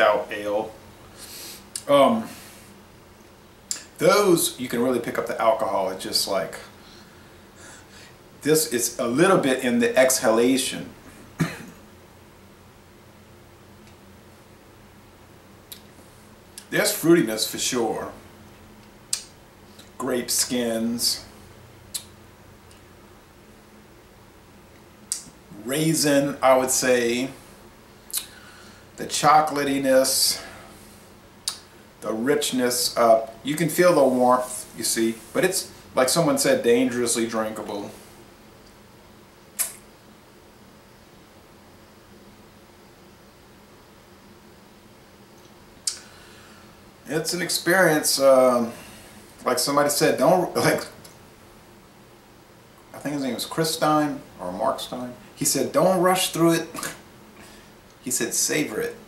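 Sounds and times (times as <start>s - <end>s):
man coughing: 11.4s - 11.8s
lip smack: 19.1s - 19.9s, 21.9s - 22.2s, 28.1s - 28.3s, 39.6s - 39.9s, 45.4s - 46.1s.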